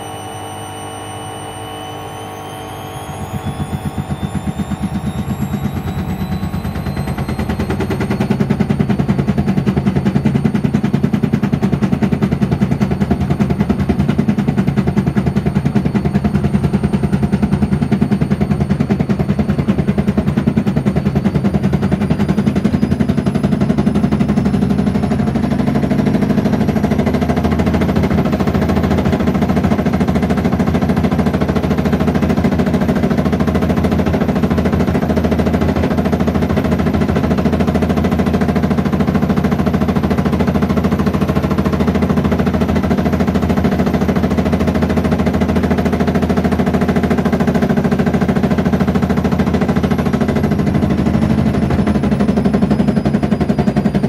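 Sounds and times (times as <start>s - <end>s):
high motor whine: 0.0s - 54.0s.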